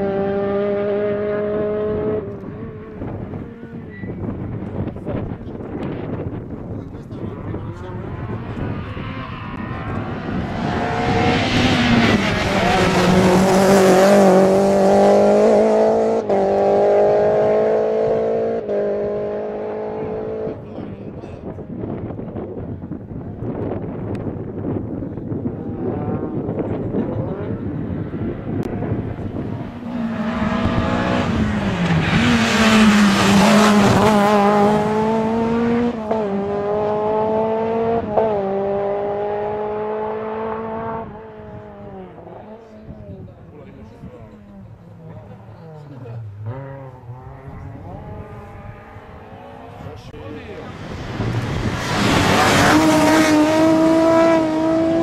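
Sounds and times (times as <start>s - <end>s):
rally cars passing at full throttle: 0.0s - 55.0s.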